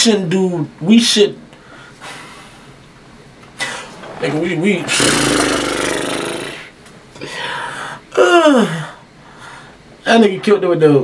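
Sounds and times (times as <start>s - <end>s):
man groaning raspily: 4.8s - 6.7s.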